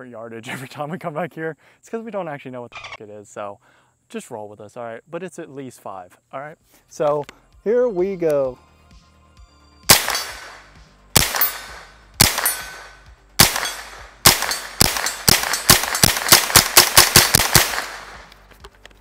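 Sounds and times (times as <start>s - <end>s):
rifle shots with echo: 9.9s - 18.3s.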